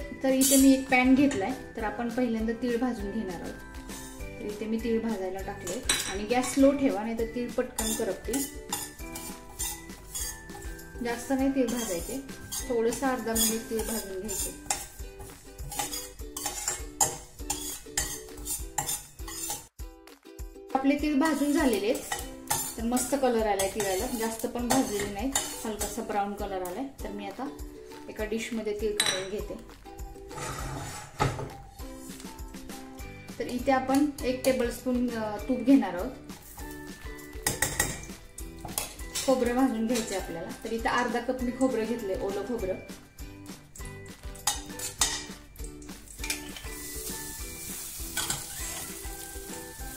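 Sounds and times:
utensil scraping a steel pan: 7.7 - 19.7, 21.4 - 25.9, 30.2 - 31.5, 46.2 - 49.9.

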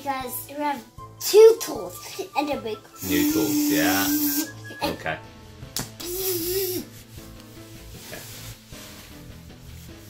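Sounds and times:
background music: 0.0 - 10.0
fabric rustling: 6.8 - 10.0.

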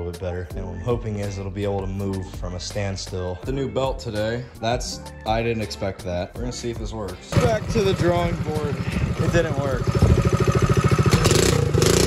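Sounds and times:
small engine running fast: 7.3 - 12.0.

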